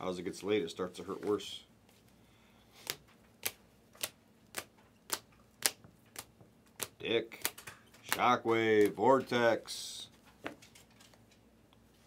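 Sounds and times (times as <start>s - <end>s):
cards clicking off stack: 2.8s - 9.0s.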